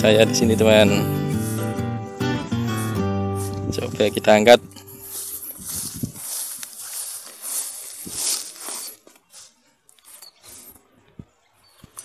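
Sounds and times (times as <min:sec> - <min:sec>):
grass rustling and scuffing: 0:00.0 - 0:10.9.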